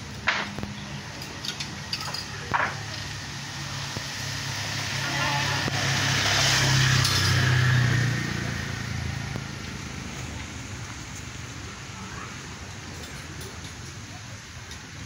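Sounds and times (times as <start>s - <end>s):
vehicle passing by: 2.9s - 12.2s.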